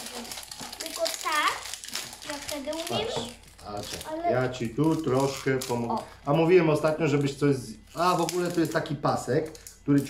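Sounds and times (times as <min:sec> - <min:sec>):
plastic wrap crinkling and tearing: 0:00.0 - 0:10.0.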